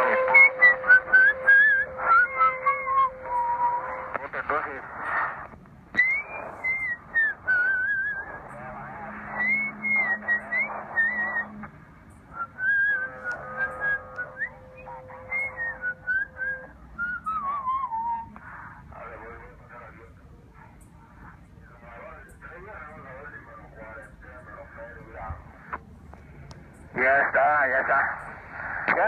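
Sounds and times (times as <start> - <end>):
person whistling over radio: 0.0 - 4.2, 6.0 - 11.7, 12.3 - 18.7
garbled radio voice: 0.0 - 11.7, 12.3 - 16.3, 18.9 - 20.2, 26.9 - 29.0
steady radio tones: 0.0 - 29.0.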